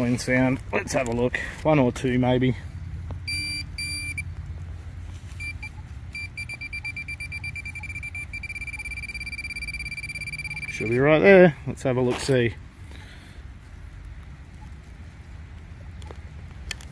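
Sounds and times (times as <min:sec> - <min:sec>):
pinpointer beeping faster: 0:03.3 - 0:04.2, 0:05.4 - 0:11.1
short high beeps: 0:03.3 - 0:04.2, 0:05.4 - 0:11.1.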